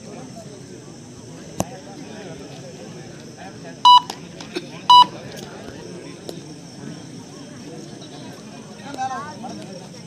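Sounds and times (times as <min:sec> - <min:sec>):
crowd chatter: 0:00.0 - 0:10.0
short electronic beeps: 0:03.9 - 0:04.1, 0:04.9 - 0:05.1.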